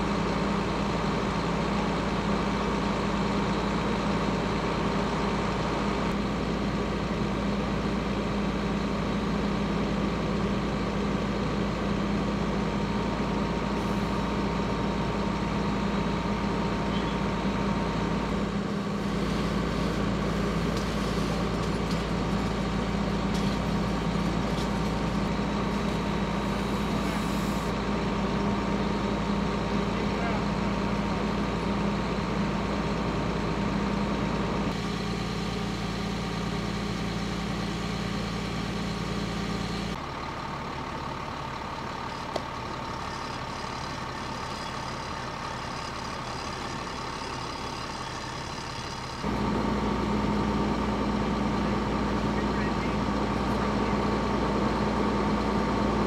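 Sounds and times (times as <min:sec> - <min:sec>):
diesel engine droning: 0:00.0 - 0:56.0.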